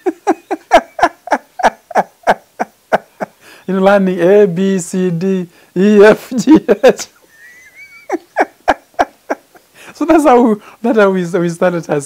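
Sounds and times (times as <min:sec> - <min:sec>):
man laughing: 0:00.0 - 0:03.4, 0:05.8 - 0:10.6.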